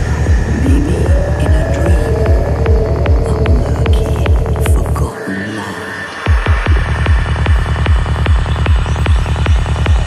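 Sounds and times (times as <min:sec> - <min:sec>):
kick drum: 0:00.0 - 0:04.9, 0:06.3 - 0:10.0
throbbing bass: 0:00.0 - 0:05.3, 0:06.0 - 0:10.0.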